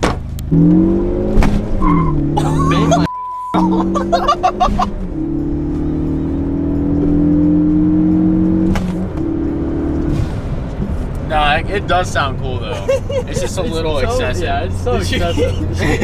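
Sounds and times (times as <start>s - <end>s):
car engine accelerating: 0.0s - 16.0s
censor bleep: 3.0s - 3.6s.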